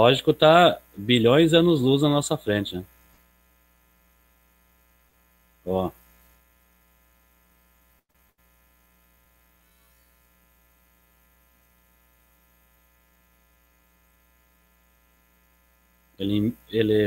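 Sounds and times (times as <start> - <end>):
faint mains hum: 0.0 - 17.0.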